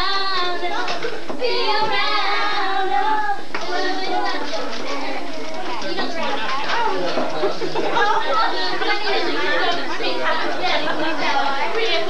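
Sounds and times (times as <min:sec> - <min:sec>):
crowd of voices chattering: 0:00.0 - 0:12.0.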